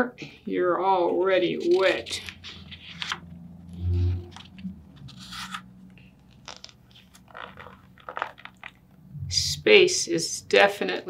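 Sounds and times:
book pages rustling: 1.6 - 8.8.

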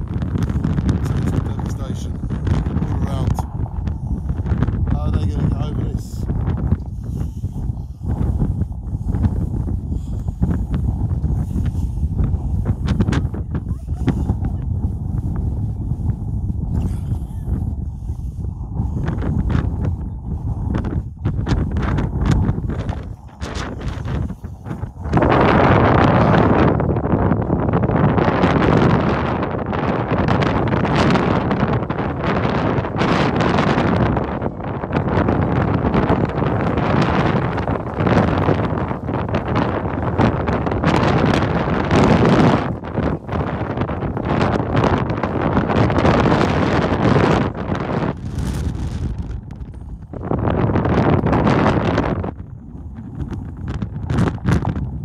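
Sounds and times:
strong wind buffeting microphone: 0.0 - 55.0.

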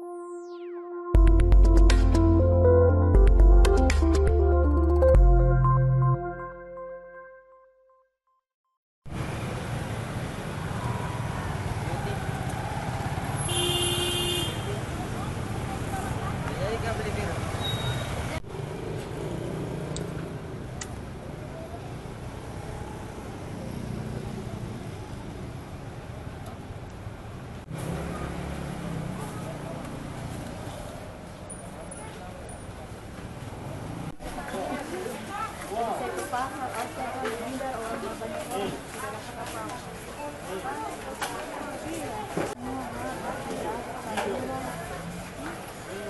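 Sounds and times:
motorcycle and car engines: 9.1 - 13.8, 14.7 - 35.3
vehicle horn: 13.4 - 14.7.

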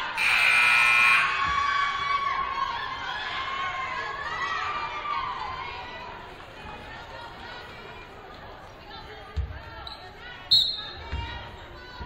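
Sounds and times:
scoreboard buzzer: 0.2 - 1.3.

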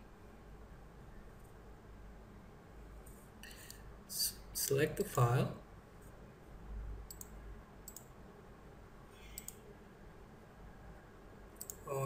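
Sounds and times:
low steady hum: 0.0 - 12.0
computer mouse clicks: 7.1 - 8.1, 9.2 - 9.6, 11.6 - 11.9.

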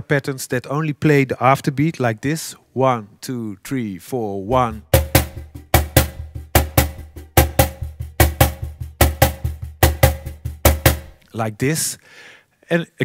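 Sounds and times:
cajon hand slaps: 4.9 - 11.2.

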